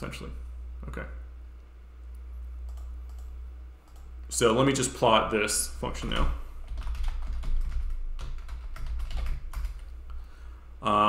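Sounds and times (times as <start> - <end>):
steady low hum: 0.0 - 11.0
typing on computer keyboard: 6.0 - 10.0.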